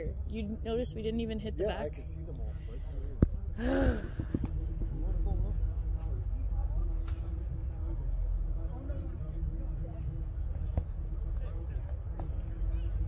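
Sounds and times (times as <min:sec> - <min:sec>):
faint distant voices: 0:00.0 - 0:13.0
wind rumbling on microphone: 0:02.1 - 0:13.0.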